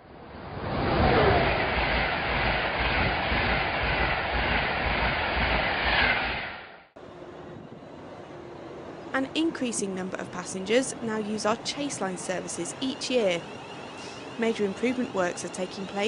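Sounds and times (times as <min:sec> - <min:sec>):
train rushing past: 0:00.0 - 0:16.0.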